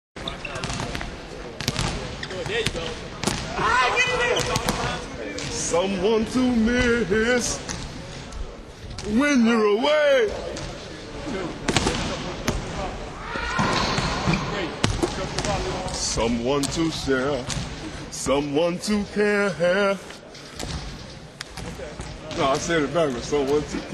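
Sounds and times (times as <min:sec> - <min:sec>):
basketballs bouncing on gym floor: 0:00.5 - 0:03.5, 0:13.7 - 0:15.8.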